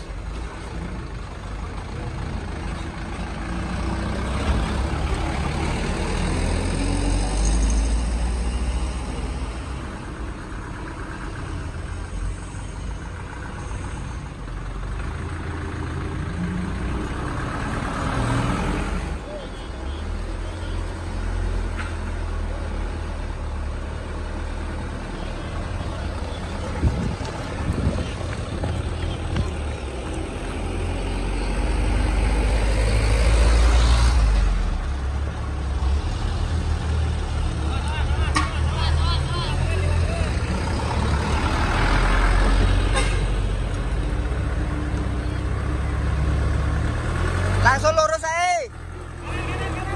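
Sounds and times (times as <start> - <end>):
diesel truck engines rumbling: 0.0 - 49.9.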